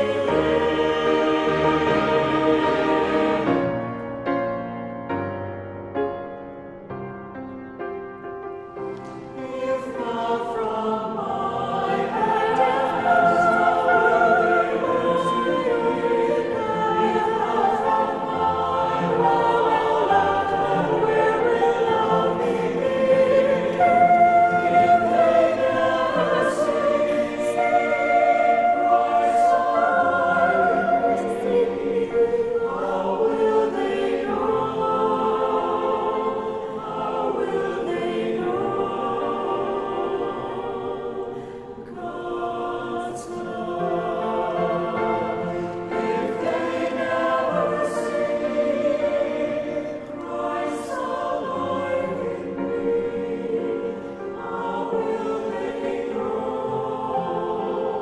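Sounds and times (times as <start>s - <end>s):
choir singing in parts: 0.0s - 5.8s, 8.6s - 58.0s
piano accompaniment: 0.0s - 41.2s, 41.8s - 58.0s.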